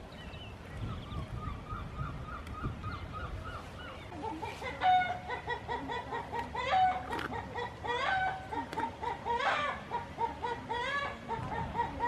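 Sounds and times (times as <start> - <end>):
bird chirping: 0.0 - 4.1.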